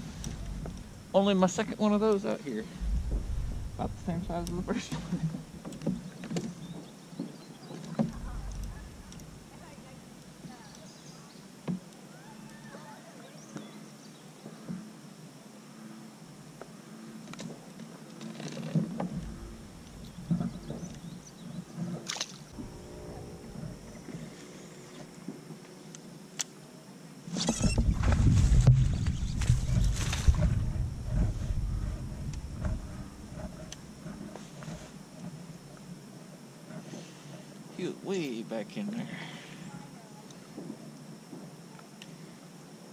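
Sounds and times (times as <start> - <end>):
rustling grass: 0.0 - 5.6, 27.7 - 35.2
low rumbling: 0.0 - 5.8, 8.0 - 10.1, 19.0 - 21.6, 22.5 - 25.3, 27.6 - 34.3
fish splashing and thrashing: 22.0 - 24.3.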